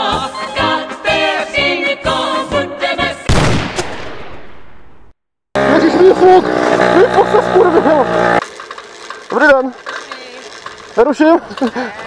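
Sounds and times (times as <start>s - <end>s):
music: 0.0s - 3.3s.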